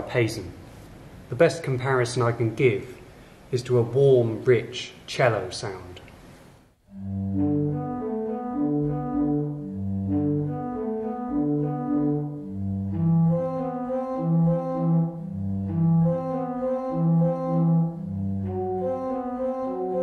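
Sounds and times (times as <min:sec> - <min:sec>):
pipe organ chords: 0:06.9 - 0:20.0.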